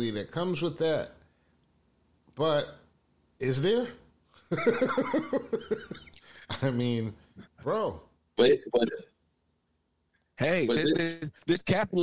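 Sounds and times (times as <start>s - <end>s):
man laughing: 4.5s - 6.6s.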